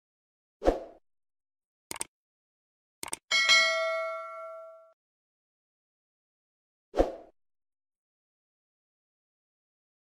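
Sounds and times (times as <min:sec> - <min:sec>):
mouse clicks: 0:03.0 - 0:03.2
notification bell ding: 0:03.3 - 0:04.9.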